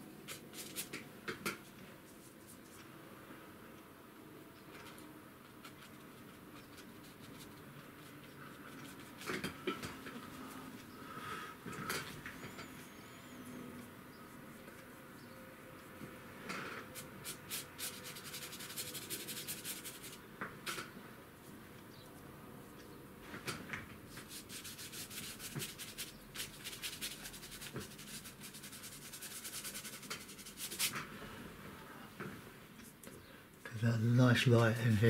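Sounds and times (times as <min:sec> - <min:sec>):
brush scrubbing paint on paper: 0:00.3 - 0:00.9, 0:05.4 - 0:09.5, 0:16.9 - 0:20.2, 0:24.1 - 0:31.0.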